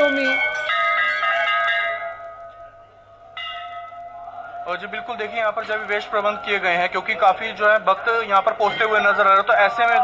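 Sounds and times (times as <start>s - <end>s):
bell-like chime ringing: 0.0s - 6.2s.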